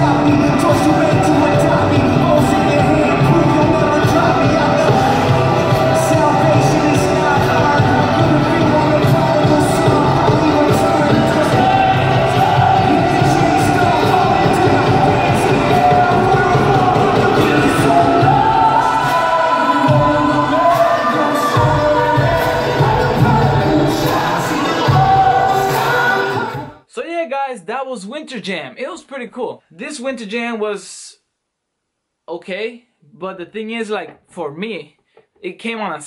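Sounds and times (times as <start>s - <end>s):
live rock band playing: 0.0s - 18.2s
crowd noise: 0.0s - 26.8s
lead vocal singing: 0.0s - 26.8s.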